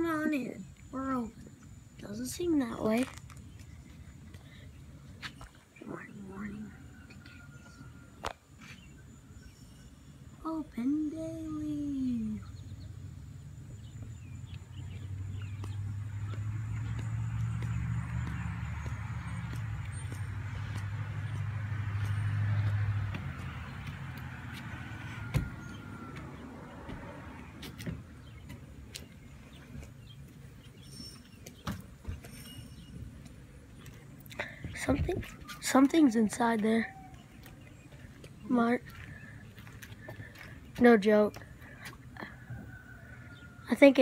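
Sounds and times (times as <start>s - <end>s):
car passing by: 14.1s - 28.4s.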